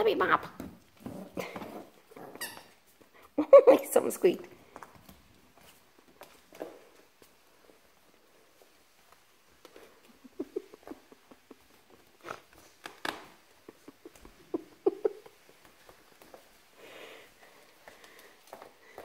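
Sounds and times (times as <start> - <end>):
scuffs clicks and squeaks: 0.7 - 3.0.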